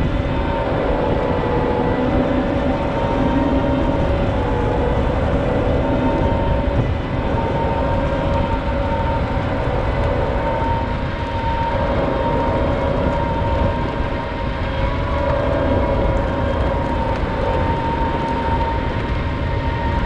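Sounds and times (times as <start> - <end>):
diesel engine drone with whine: 0.0 - 20.0.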